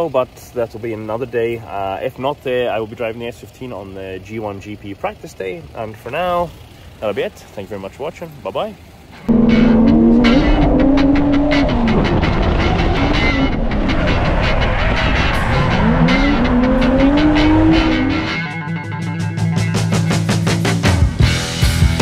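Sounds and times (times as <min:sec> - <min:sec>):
car engine revving hard: 0:09.3 - 0:18.6
rock music: 0:09.3 - 0:22.0.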